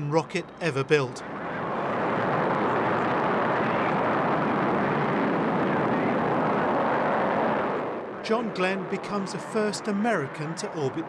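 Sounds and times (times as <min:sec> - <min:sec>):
rocket engines roaring: 0:00.0 - 0:11.0.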